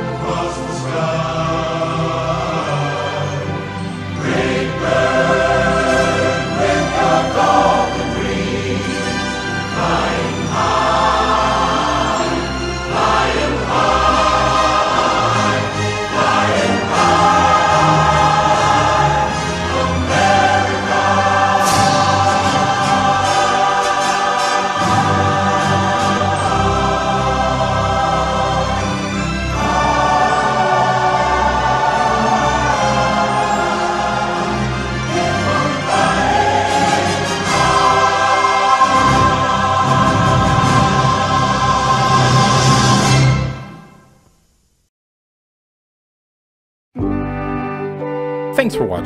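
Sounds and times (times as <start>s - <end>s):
choir singing: 0.0s - 43.9s
orchestra playing: 47.1s - 49.0s.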